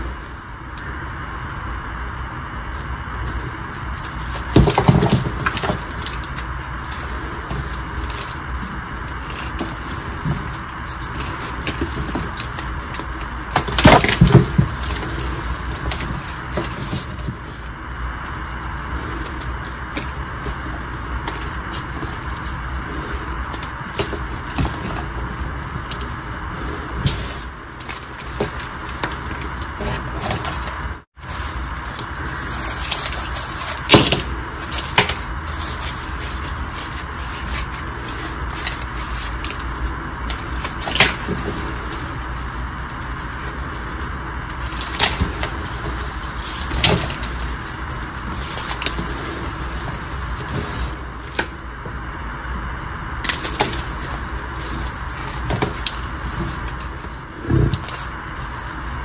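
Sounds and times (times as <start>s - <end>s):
chalk crumbling between hands: 2.7s - 51.6s
chalk pieces cracking: 2.8s - 51.5s.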